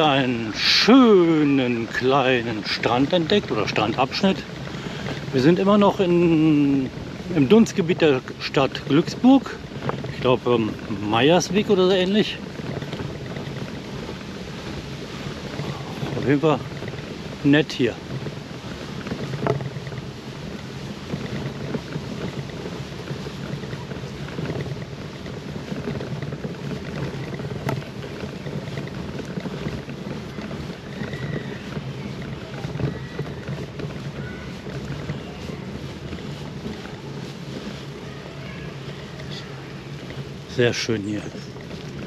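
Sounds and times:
bicycle tyres rolling on gravel: 0.0s - 42.0s
wind buffeting microphone: 0.0s - 42.0s.

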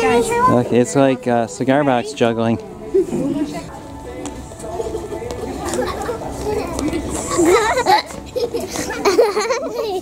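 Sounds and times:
people chattering indistinctly: 0.0s - 10.0s.

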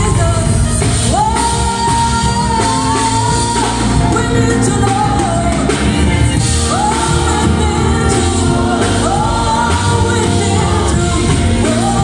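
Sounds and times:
guitar: 0.0s - 12.0s
live gospel band playing: 0.0s - 12.0s
people singing into microphones: 0.0s - 12.0s.

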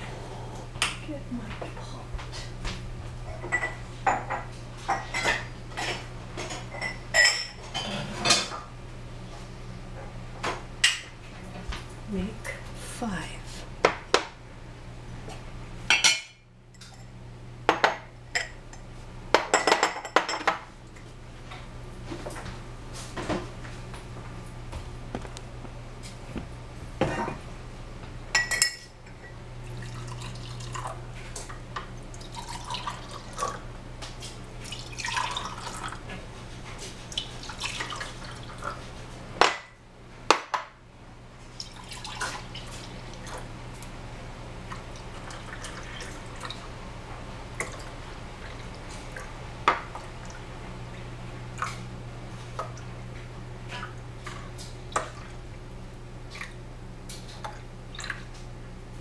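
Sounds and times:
low steady hum: 0.0s - 59.0s
dishes and utensils clinking: 3.3s - 8.6s, 28.4s - 29.4s
liquid dripping and sloshing: 29.6s - 31.0s, 32.0s - 33.6s, 34.6s - 36.1s, 37.1s - 38.8s, 41.5s - 43.9s, 44.7s - 46.7s, 47.6s - 50.5s, 56.3s - 56.6s, 57.2s - 58.5s.

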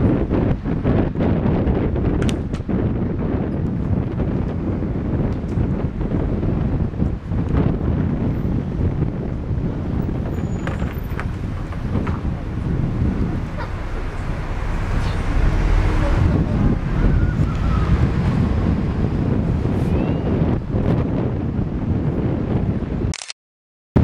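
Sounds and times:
wind buffeting microphone: 0.0s - 23.1s.

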